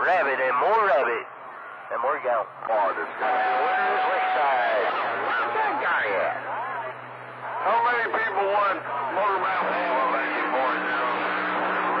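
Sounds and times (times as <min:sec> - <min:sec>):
radio hum and tones: 0:00.0 - 0:04.2, 0:04.8 - 0:12.0
men's voices over radio speaker: 0:00.0 - 0:12.0.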